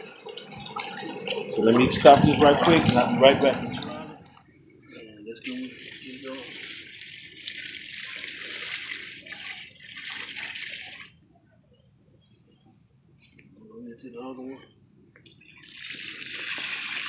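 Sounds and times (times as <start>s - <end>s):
liquid pouring onto soil: 5.4s - 11.2s, 15.5s - 17.0s.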